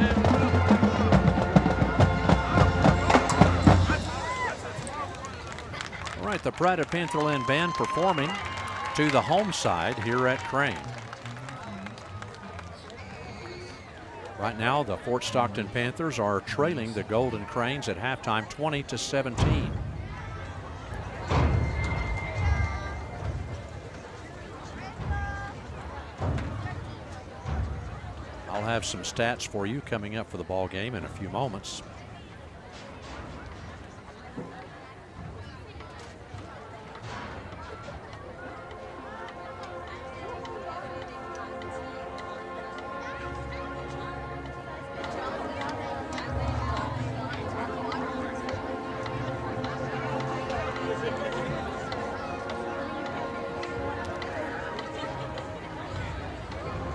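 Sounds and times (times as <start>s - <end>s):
brass chords: 0.0s - 4.8s, 38.5s - 56.9s
distant marching band: 0.0s - 56.9s
voices: 0.0s - 56.9s.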